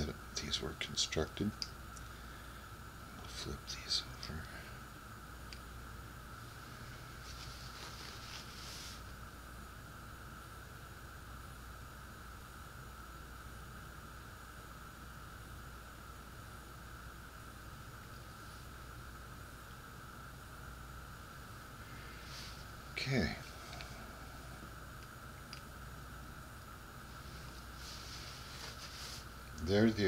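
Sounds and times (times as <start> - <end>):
faint hum and hiss: 0.0 - 30.0
faint rustle: 6.5 - 9.1, 21.8 - 24.6, 27.0 - 29.8.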